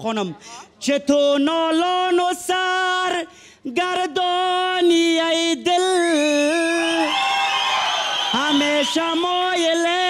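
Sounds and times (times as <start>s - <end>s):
audience cheering: 6.8s - 9.5s.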